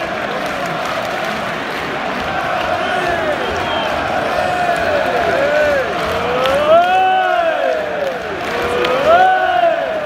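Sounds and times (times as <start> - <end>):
football crowd chanting: 0.0 - 10.0.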